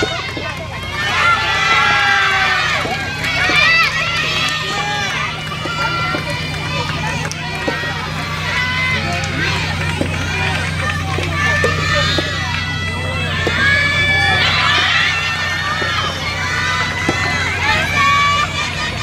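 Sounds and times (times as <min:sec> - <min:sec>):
many voices shouting: 0:00.0 - 0:19.0
steady low hum: 0:00.0 - 0:19.0.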